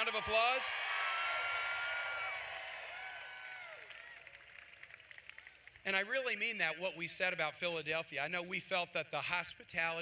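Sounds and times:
crowd applauding and cheering: 0.0s - 5.8s.

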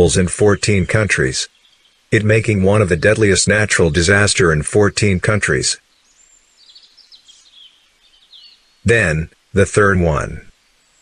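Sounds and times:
person narrating: 0.0s - 1.5s, 2.2s - 5.8s, 8.9s - 10.5s
bird chirps and tweets: 0.0s - 2.2s, 5.8s - 8.9s.

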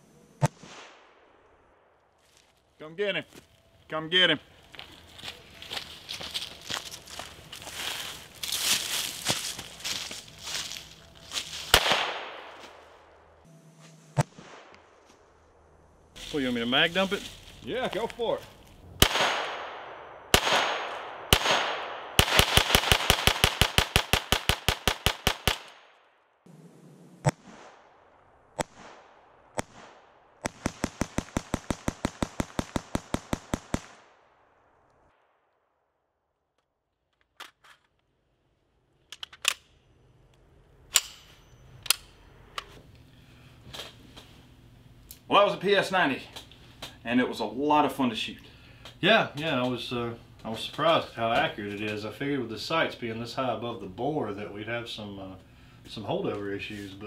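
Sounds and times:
single gunshots: 0.4s - 1.3s, 11.7s - 12.8s, 14.2s - 14.9s, 19.0s - 25.9s
rapid gunshots: 19.0s - 25.8s, 28.6s - 34.0s.

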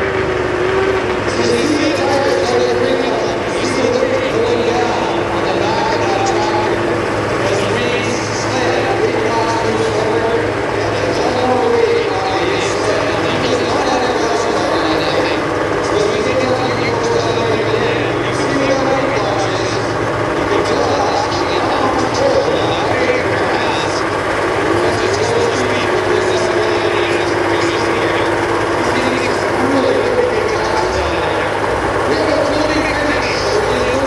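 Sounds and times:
diesel tractor engine running: 0.0s - 34.0s.

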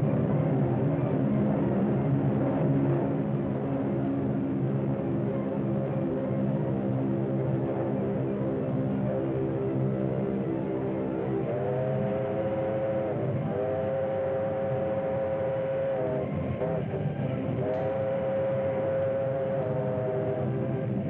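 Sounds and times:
steady train rumble: 0.0s - 21.0s
steam locomotive whistle blasts: 11.4s - 20.7s.

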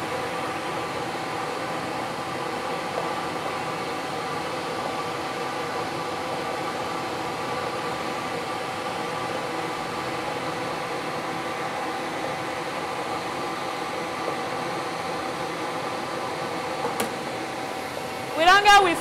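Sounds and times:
lottery machine blower whirring: 0.0s - 19.0s.

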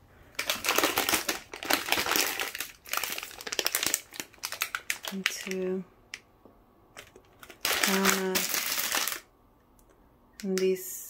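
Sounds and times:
plastic packaging crinkling: 0.3s - 6.2s, 7.0s - 9.3s.

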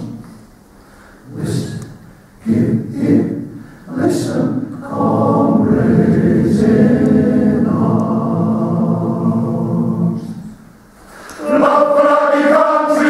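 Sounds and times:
male voice choir singing: 2.4s - 10.5s, 11.4s - 13.0s.

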